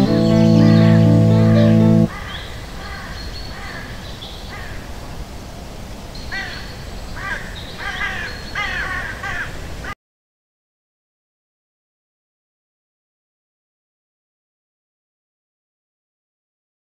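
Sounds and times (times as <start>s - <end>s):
low background noise: 0.0s - 10.0s.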